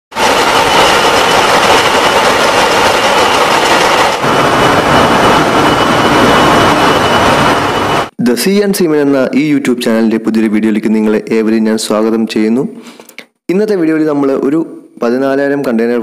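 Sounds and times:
engine room machinery running: 0.1s - 8.2s
faint high whine: 0.2s - 8.2s.

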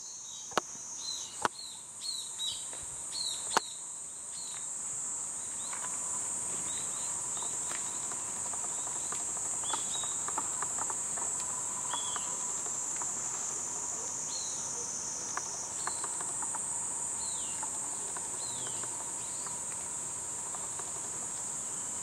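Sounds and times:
insects droning: 0.0s - 22.0s.

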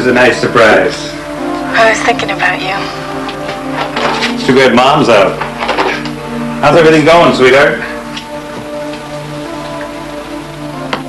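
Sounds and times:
soft film score music: 0.0s - 11.0s
steady hiss: 0.0s - 11.0s.

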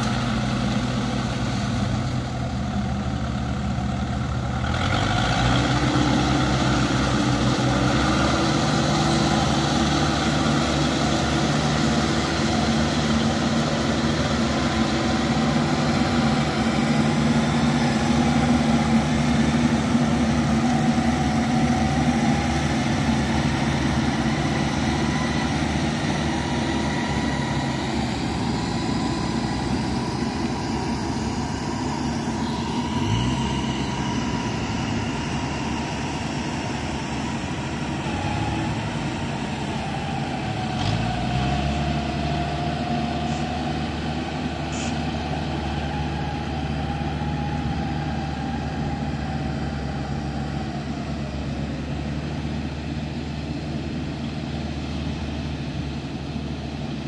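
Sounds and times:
combine harvester diesel engine: 0.0s - 57.0s.

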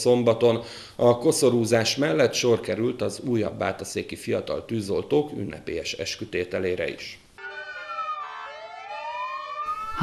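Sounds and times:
fire engine siren wailing: 7.4s - 10.0s.

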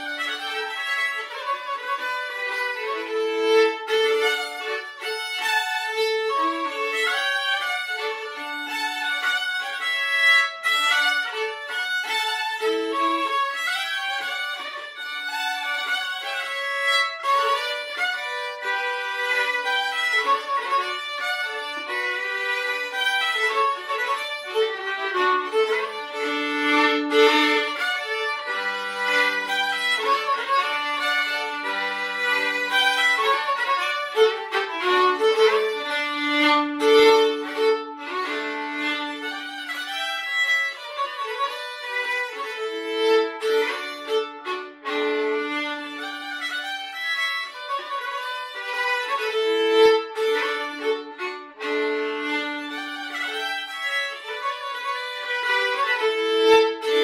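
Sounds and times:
two fiddles playing folk tune: 0.0s - 57.0s.

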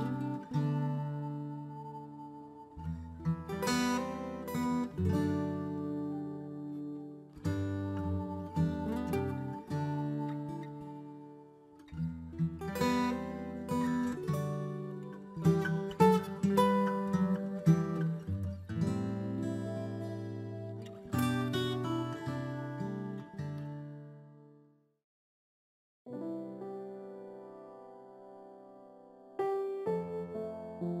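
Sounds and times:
acoustic guitar strumming: 0.0s - 24.2s.

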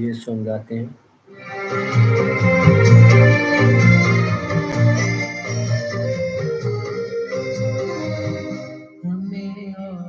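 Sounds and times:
organ-like keyboard melody: 1.3s - 9.0s.

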